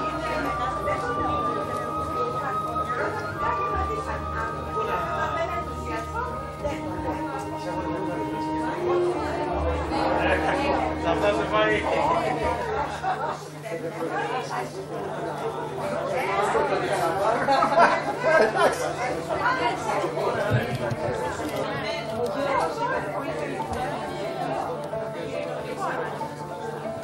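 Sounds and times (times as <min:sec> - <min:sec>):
music: 0:00.0 - 0:27.0
people talking over one another: 0:00.0 - 0:27.0.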